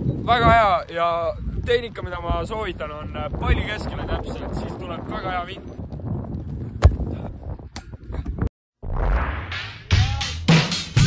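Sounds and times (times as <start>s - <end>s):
wind rumble on microphone: 0.0s - 8.5s
football kick thud: 6.8s - 7.2s.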